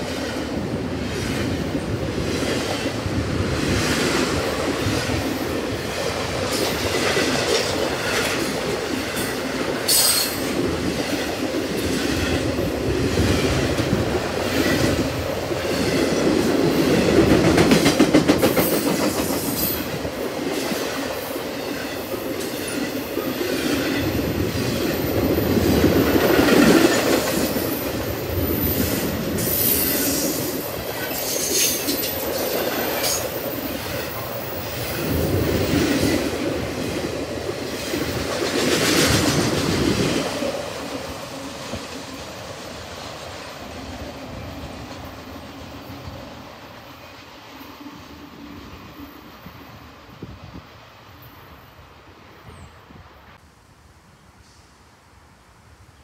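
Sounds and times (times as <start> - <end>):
train wheels rumbling on rail: 0.0 - 51.6.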